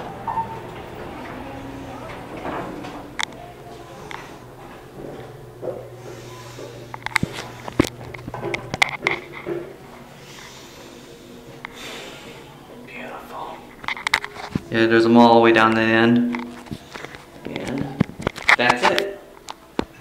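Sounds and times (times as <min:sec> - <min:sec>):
elevator humming: 0:00.0 - 0:18.4.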